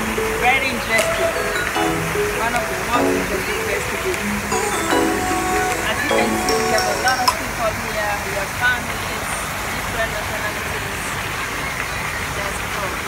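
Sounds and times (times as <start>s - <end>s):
background music: 0.0s - 7.7s
indistinct voices: 0.0s - 11.2s
water feature splashing into pond: 0.0s - 13.0s.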